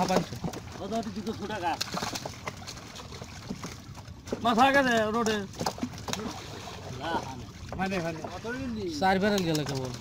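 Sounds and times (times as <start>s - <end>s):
faint splashing: 0.0s - 10.0s
group talking: 3.8s - 10.0s.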